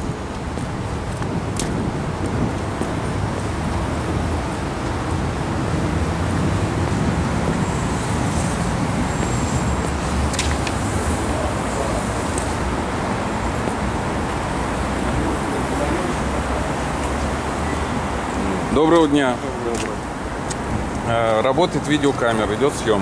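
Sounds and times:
city traffic rumble: 0.0 - 23.0.

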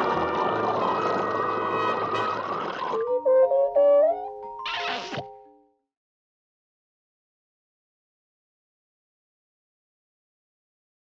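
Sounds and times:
orchestral music holding notes: 0.0 - 5.1.

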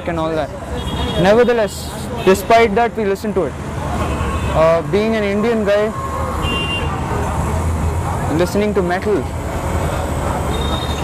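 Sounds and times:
passing vehicles rumble: 0.0 - 11.0.

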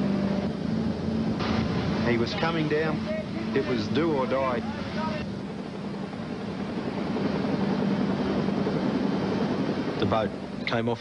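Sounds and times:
wind and sea rushing: 0.0 - 10.7
outboard engine drone: 0.0 - 11.0.

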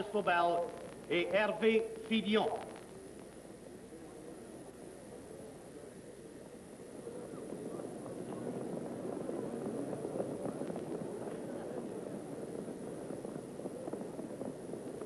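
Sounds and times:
crowd hubbub: 0.0 - 15.0
hoofbeats of horses on track: 6.6 - 15.0.

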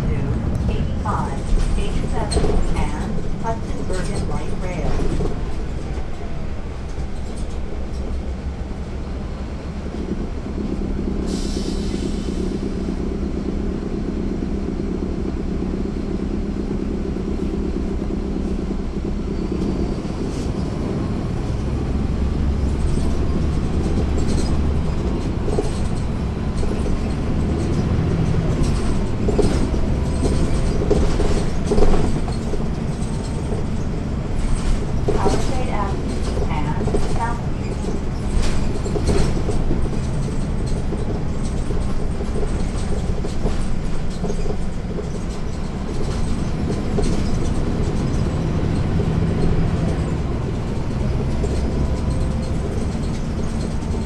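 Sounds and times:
bus diesel engine droning: 0.0 - 54.0.

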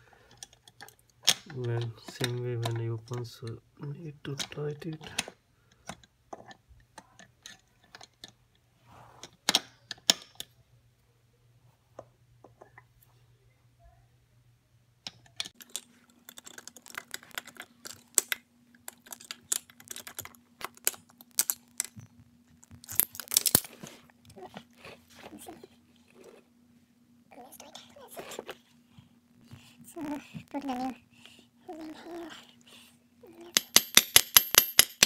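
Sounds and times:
faint steady hum: 0.0 - 35.0
metal tools clicking and scraping: 15.4 - 22.0, 22.8 - 23.9, 33.5 - 35.0.

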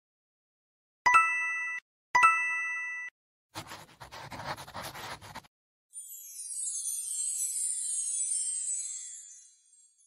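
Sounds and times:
pen scratching while writing: 3.6 - 5.5.

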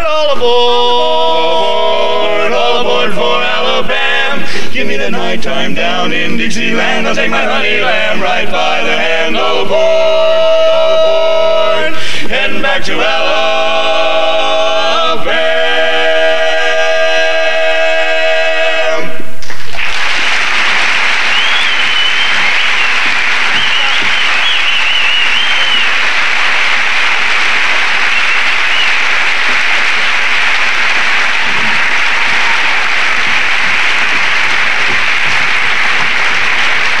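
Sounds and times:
barbershop quartet singing chord: 0.4 - 19.2
audience applause and cheering: 19.4 - 37.0.

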